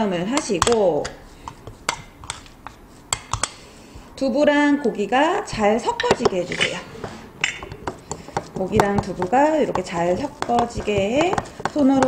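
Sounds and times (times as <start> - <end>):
spoon stirring food in bowl: 0.0 - 4.1, 5.2 - 12.0.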